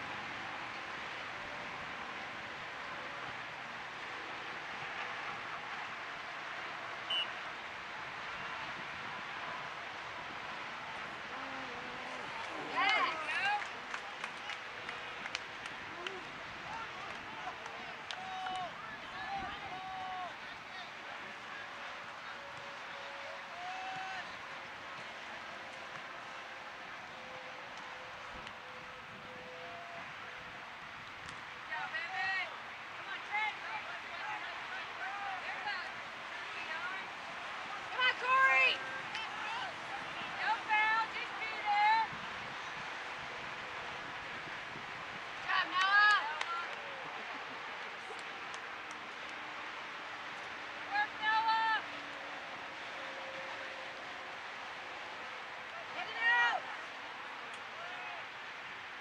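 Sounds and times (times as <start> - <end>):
outdoor background hiss: 0.0 - 59.0
distant voices shouting calls: 5.1 - 7.9.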